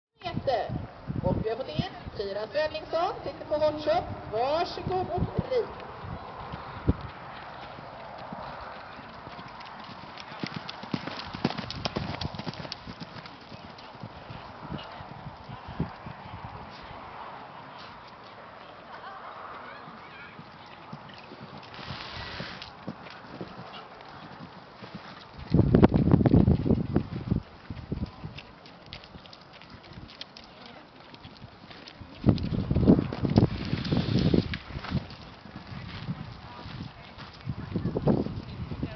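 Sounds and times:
pony hoofbeats on sand: 0:04.6 - 0:17.0, 0:19.5 - 0:38.9.

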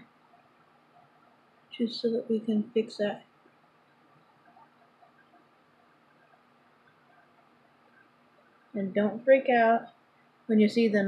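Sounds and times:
faint tiny ticks: 0:03.2 - 0:08.8.

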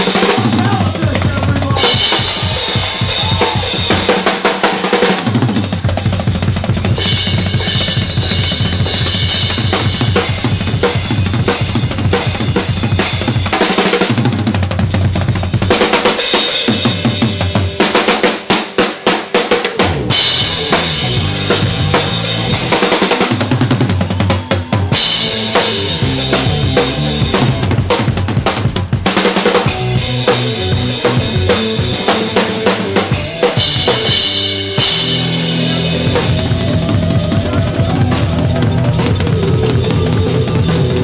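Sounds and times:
drum solo on a full kit: 0:00.0 - 0:41.0.

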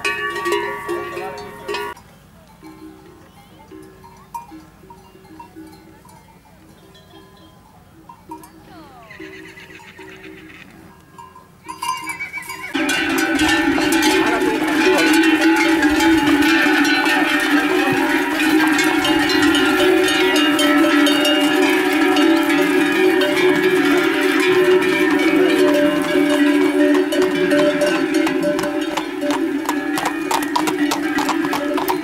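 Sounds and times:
livestock bells clanging: 0:00.0 - 0:32.0.

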